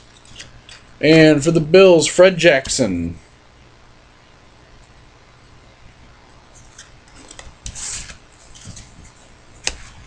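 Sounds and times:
trading cards rubbing and sliding: 0.1 - 0.8, 6.5 - 10.0.

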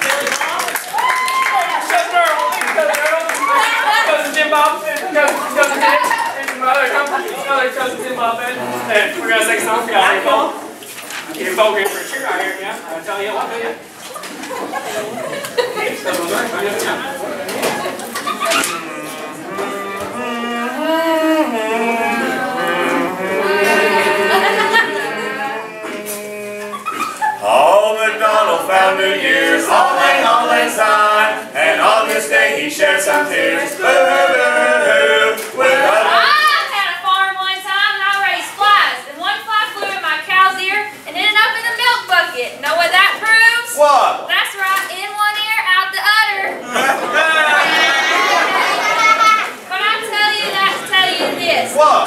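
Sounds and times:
group singing a cappella: 18.4 - 36.7
high-pitched voices sliding vowels: 18.6 - 27.2.

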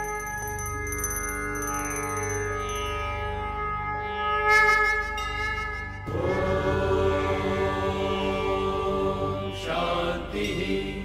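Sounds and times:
held instrumental tone: 0.0 - 3.3
mantra chanting: 6.1 - 11.0.

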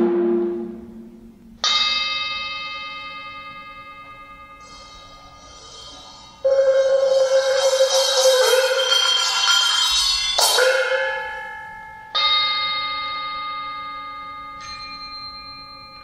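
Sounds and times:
bell-like metal percussion strikes: 0.0 - 16.0.

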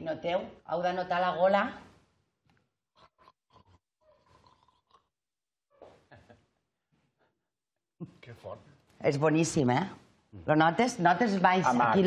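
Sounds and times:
faint gargling throat sounds: 2.9 - 5.2.

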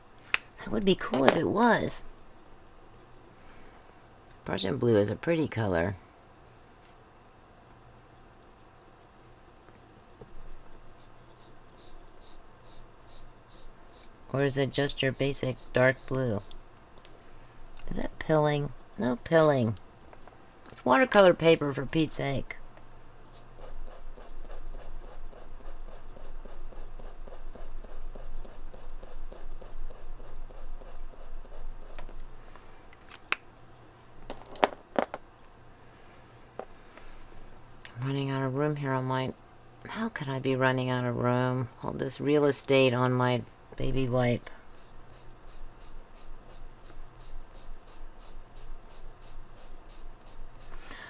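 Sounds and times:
marker scratching on paper: 11.0 - 14.1, 23.6 - 32.3, 44.7 - 50.8.

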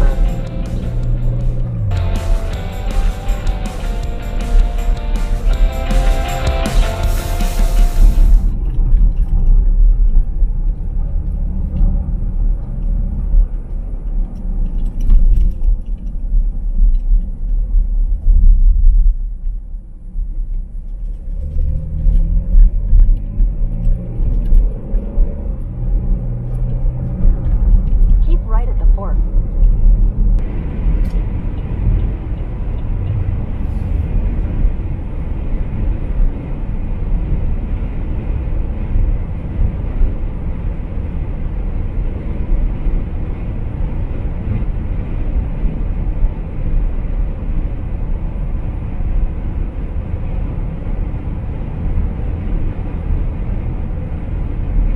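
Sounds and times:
car interior road noise: 0.0 - 54.9.

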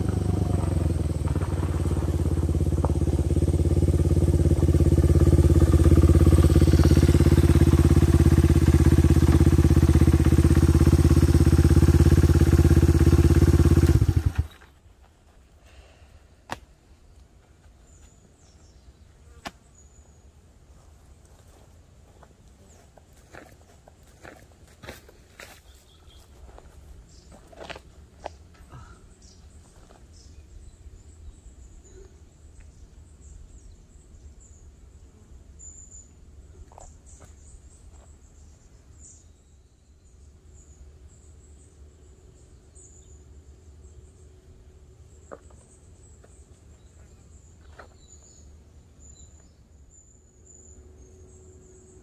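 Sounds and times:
low rumble of wind: 0.0 - 15.6.

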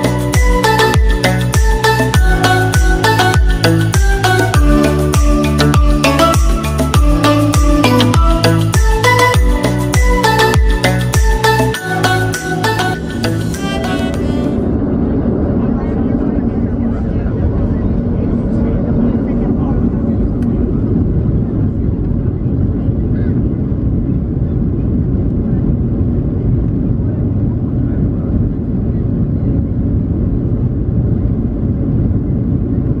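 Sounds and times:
airplane cabin rumble: 0.0 - 33.0
jet engines at takeoff thrust: 14.5 - 33.0.

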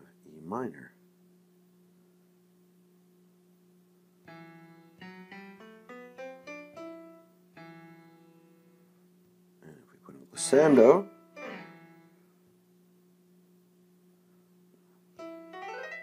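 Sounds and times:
faint hum: 0.0 - 16.0
piano chord and notes: 4.2 - 8.8, 10.4 - 12.2, 15.2 - 16.0.

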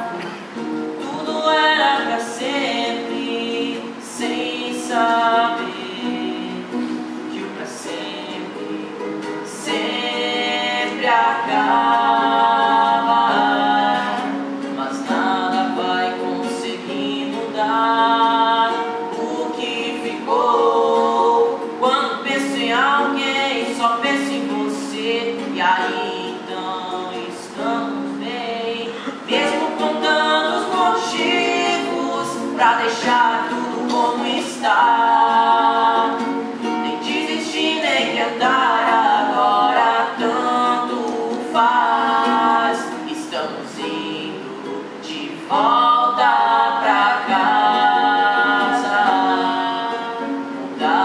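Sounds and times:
acoustic guitar: 0.0 - 51.0
woman singing: 0.0 - 51.0.

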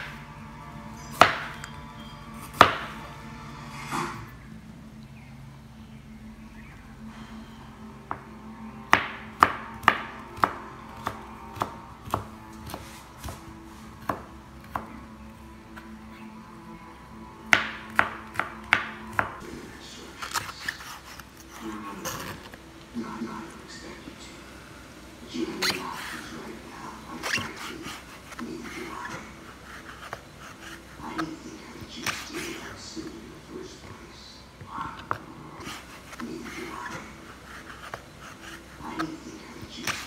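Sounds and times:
faint steady hum: 0.0 - 40.0
knife slicing soft wet food: 8.9 - 15.0.

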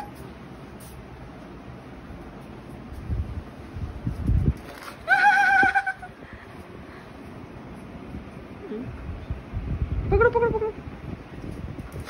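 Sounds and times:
puppy whining: 0.0 - 0.2.

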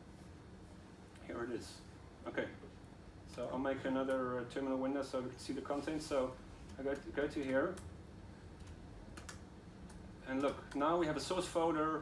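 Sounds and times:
faint laptop keyboard typing: 6.5 - 11.4.

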